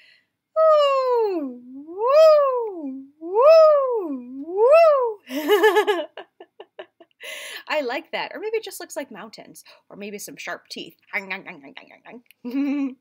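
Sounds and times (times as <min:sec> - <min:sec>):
woman singing sliding ooh: 0:00.6 - 0:05.3.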